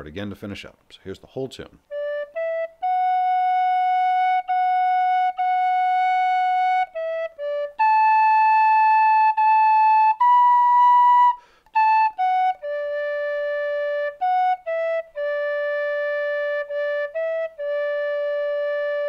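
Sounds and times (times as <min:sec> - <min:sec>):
tin whistle playing slow air: 0:02.0 - 0:19.0.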